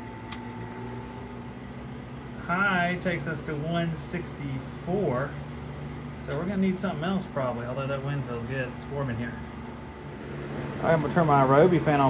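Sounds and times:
box fan humming: 0.0s - 12.0s
fan speed knob click: 0.2s - 0.6s.

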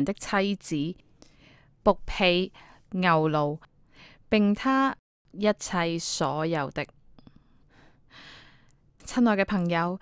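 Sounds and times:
woman speaking: 0.0s - 1.0s, 1.9s - 3.7s, 4.3s - 7.0s, 9.0s - 10.0s.

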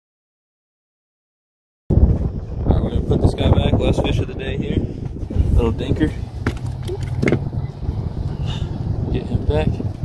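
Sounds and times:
strong wind buffeting microphone: 1.9s - 10.0s.

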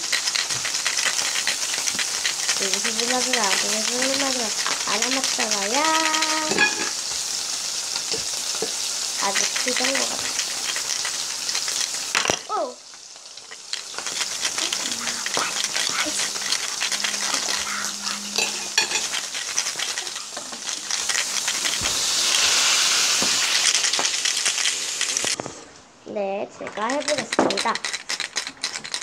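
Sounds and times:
metal bolts rattling in a bottle: 0.0s - 7.0s, 8.0s - 12.5s, 13.2s - 25.4s, 26.7s - 29.0s.

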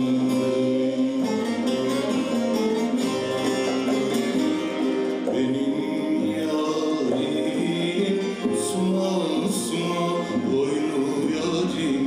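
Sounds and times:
folk ensemble with plucked lutes: 0.0s - 12.0s.

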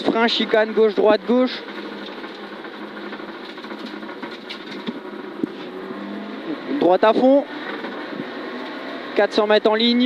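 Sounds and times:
car engine inside cabin: 0.0s - 10.0s.

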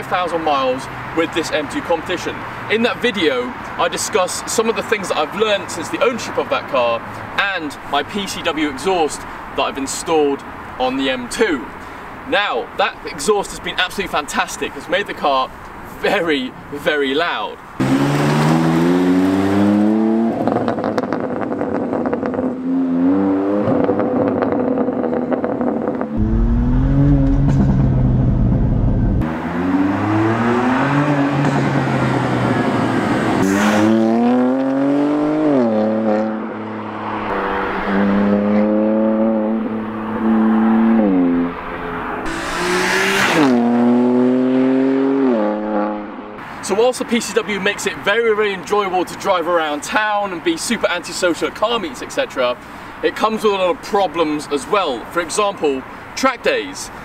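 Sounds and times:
car engine revving hard: 17.8s - 46.2s.

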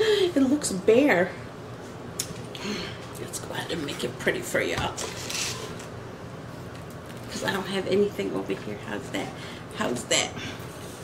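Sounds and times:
air conditioner hum: 0.0s - 11.0s.

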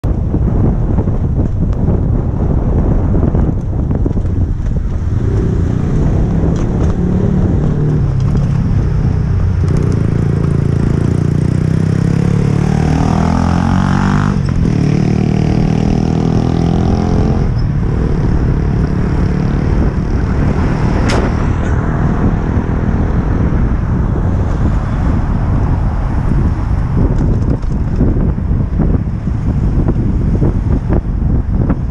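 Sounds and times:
bicycle road rumble: 0.0s - 31.9s
wind on microphone: 0.0s - 31.9s
motor vehicle engine accelerating: 3.6s - 31.9s.

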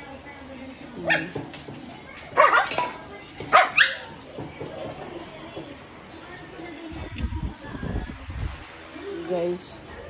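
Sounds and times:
dog barking: 1.1s - 1.4s, 2.4s - 2.8s, 3.5s - 4.1s.

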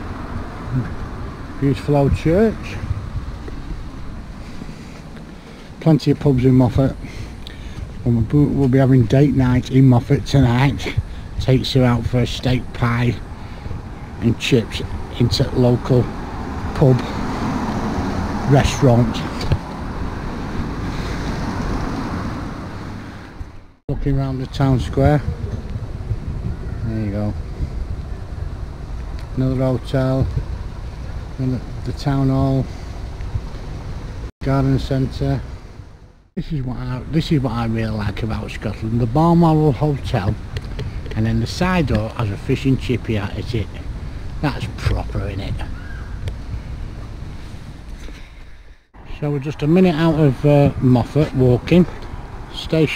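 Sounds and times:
wind buffeting microphone: 0.0s - 36.2s, 37.0s - 52.9s
steady rushing noise: 0.0s - 52.9s.

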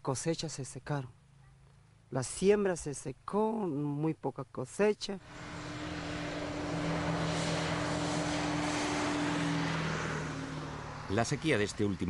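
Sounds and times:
engine running with rushing noise: 5.2s - 12.0s.

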